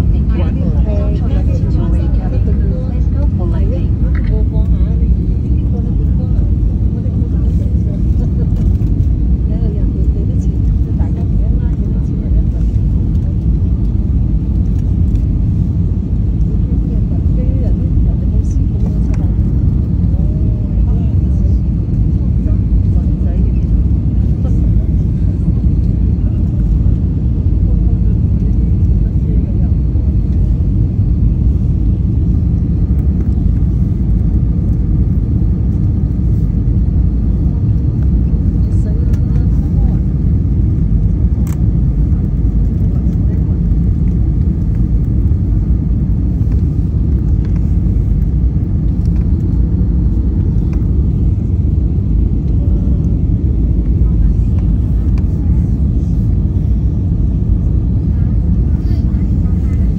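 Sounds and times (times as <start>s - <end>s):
airliner cabin rumble: 0.0s - 59.9s.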